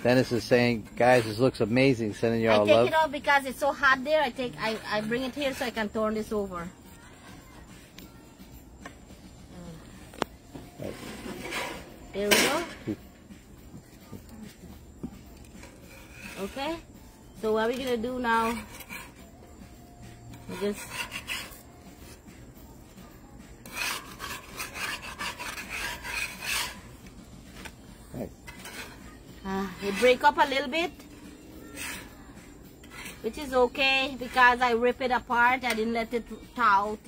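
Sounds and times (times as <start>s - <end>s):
spatula scraping on griddle: 0.0s - 37.0s.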